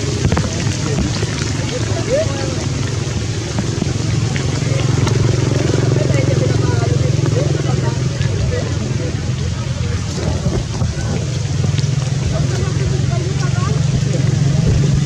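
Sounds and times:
faint voices: 0.0 - 15.0
low engine drone: 0.0 - 15.0
rain hissing: 0.0 - 15.0.

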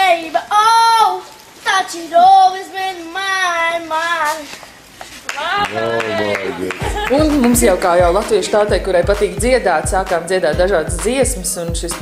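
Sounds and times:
child singing wordless notes: 0.0 - 4.7.

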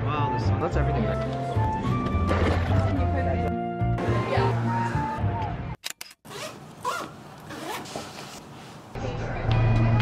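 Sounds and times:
backpack zipper pulled: 6.2 - 8.5.

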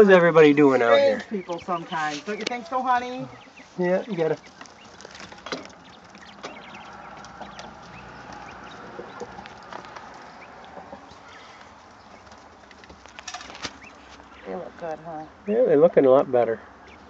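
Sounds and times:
quail chirping and clucking: 0.0 - 17.0.

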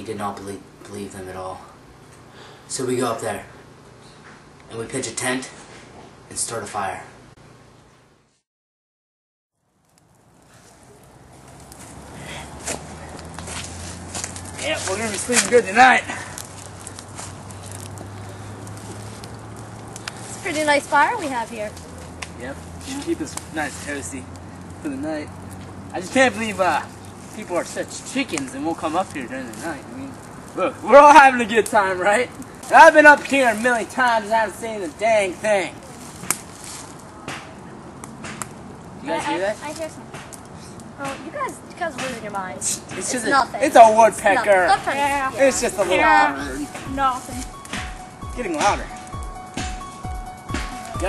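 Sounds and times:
footsteps rustling dry leaves: 10.2 - 37.2, 43.3 - 51.0
sharp twig snaps: 16.3 - 20.3, 36.2 - 38.6.

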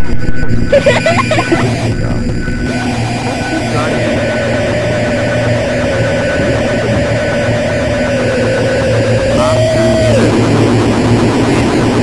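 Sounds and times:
dense noise wash: 0.0 - 12.0
steady low hum: 0.0 - 12.0
wavering held tone: 0.0 - 12.0.

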